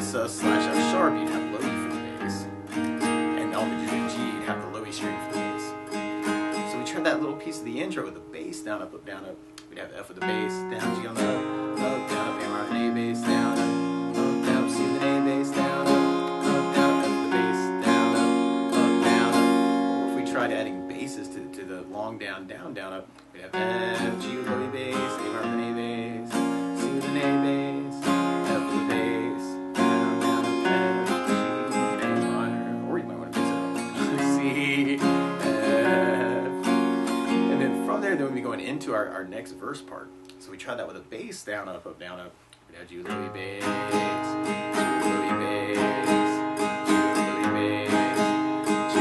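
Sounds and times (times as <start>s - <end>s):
acoustic guitar strumming: 0.0s - 49.0s.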